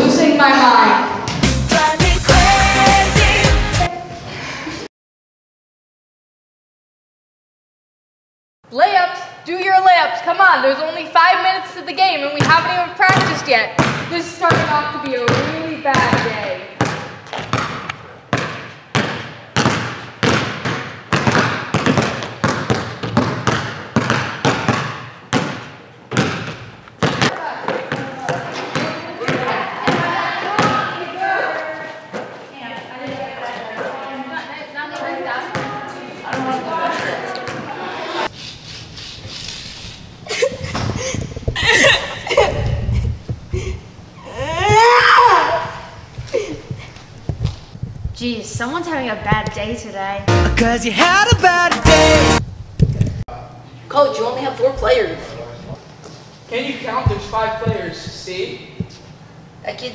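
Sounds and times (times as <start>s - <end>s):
basketballs bouncing on gym floor: 12.3s - 31.0s, 35.5s - 36.6s, 57.0s - 59.0s
young person wailing: 44.2s - 45.9s
indistinct voices: 50.3s - 52.4s.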